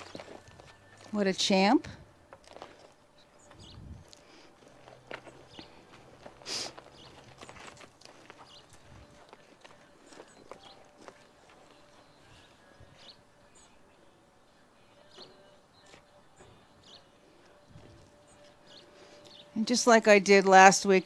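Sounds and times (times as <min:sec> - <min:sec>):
person's footsteps: 0:00.0 - 0:01.2, 0:02.2 - 0:12.8
horse hoofbeats on soft dirt: 0:00.0 - 0:12.7.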